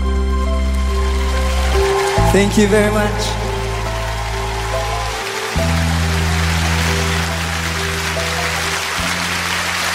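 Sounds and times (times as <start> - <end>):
audience applause: 0.6 - 9.9.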